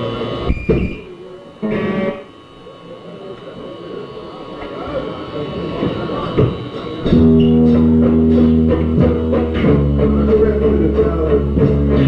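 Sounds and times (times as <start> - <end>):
electric guitar strums: 0.0 - 2.5, 5.8 - 12.0
amplifier hum: 0.0 - 12.0
guitar chord ringing: 1.5 - 2.4, 7.0 - 12.0.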